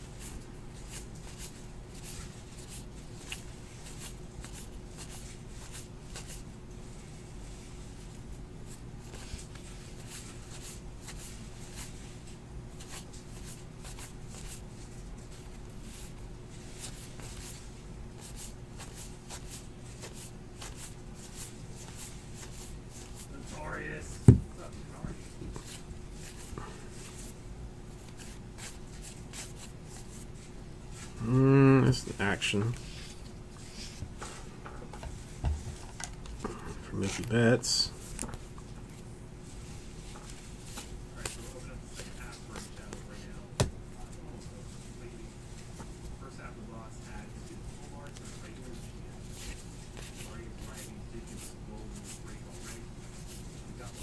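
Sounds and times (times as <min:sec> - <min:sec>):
steady low hum: 0:00.0 - 0:54.0.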